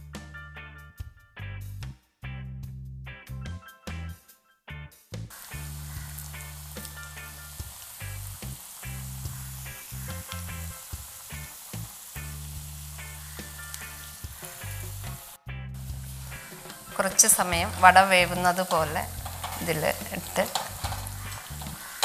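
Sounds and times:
background music: 0.0 - 22.0
hot oil sizzling: 5.3 - 22.0.

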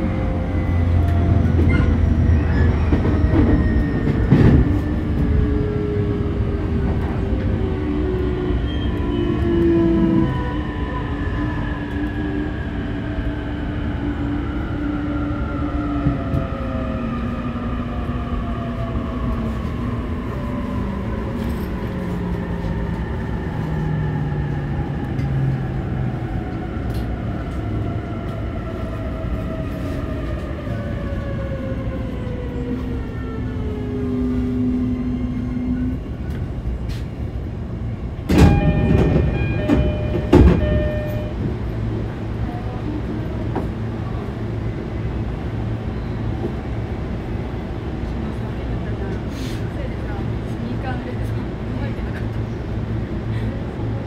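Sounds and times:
wheels rumbling on rail: 0.0 - 54.0.

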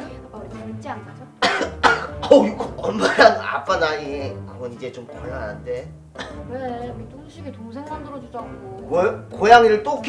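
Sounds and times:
man coughing: 1.4 - 3.6, 6.2 - 6.4.

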